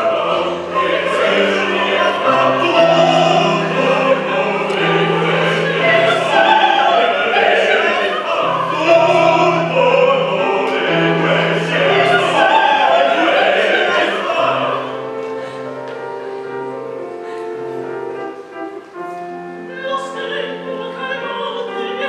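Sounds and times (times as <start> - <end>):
opera ensemble singing: 0.0 - 22.0.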